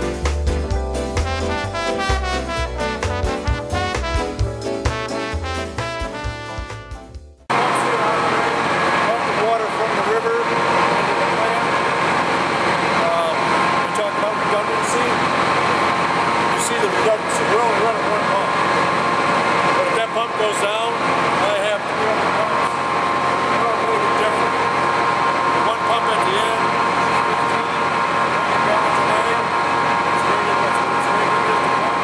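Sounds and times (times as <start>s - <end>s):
electric pump motors humming: 0.0s - 6.6s, 7.5s - 32.0s
indistinct voices talking: 7.5s - 32.0s.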